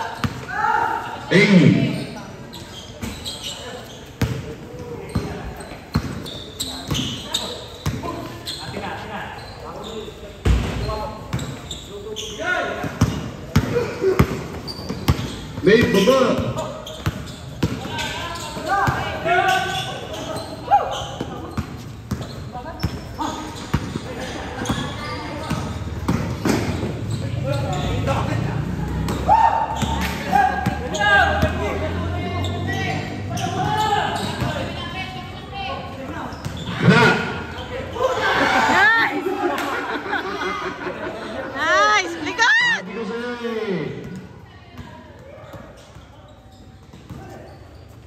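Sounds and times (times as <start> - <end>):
players calling out: 0.0 - 44.2
basketball bouncing on hard court: 0.2 - 0.5, 4.2 - 4.4, 5.1 - 6.3, 12.8 - 19.1, 21.0 - 27.0.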